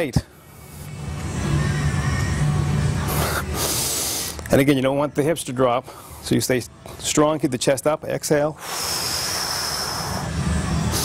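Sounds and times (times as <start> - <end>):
low strained hum: 0.0 - 11.0
man breathing hard: 3.0 - 4.4, 5.8 - 6.3, 8.6 - 11.0.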